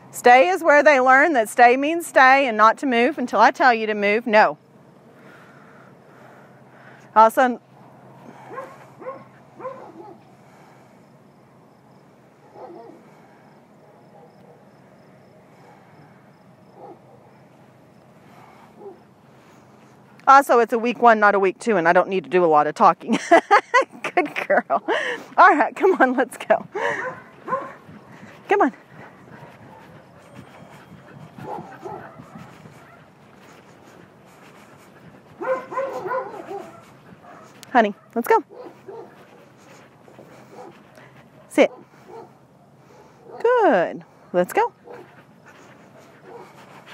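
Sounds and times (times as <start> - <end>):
faint insect chirping: 7.8 - 19.1
distant dog barking: 8.4 - 10.3, 12.4 - 13.1, 13.8 - 14.8, 16.7 - 17.4, 18.8 - 19.1, 26.8 - 28.2, 29.2 - 33.1, 35.3 - 39.4, 40.4 - 40.8, 41.5 - 43.6, 44.8 - 45.2, 46.0 - 46.6
dog whining: 35.4 - 37.5.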